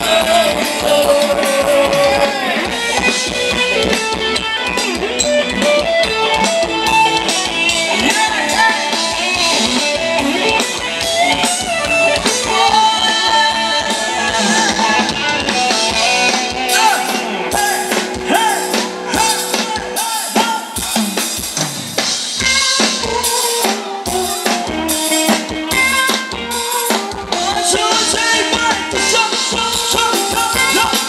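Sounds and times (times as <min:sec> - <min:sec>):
person singing melody: 0:00.0 - 0:02.7
drum kit beat: 0:00.0 - 0:31.0
electric guitar: 0:00.0 - 0:31.0.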